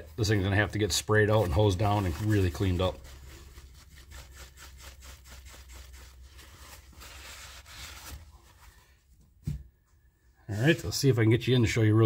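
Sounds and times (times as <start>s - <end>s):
rag rubbing on metal: 0.0s - 8.1s.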